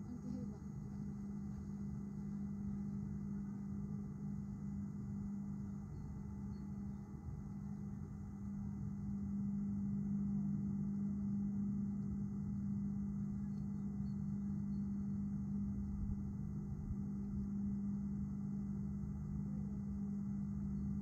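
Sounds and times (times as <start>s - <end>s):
low engine hum: 0.0s - 21.0s.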